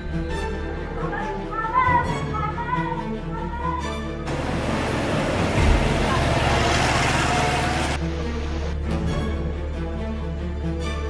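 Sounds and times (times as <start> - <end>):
background music: 0.0 - 11.0
people's voices: 4.3 - 8.0
vehicle passing: 4.3 - 8.7.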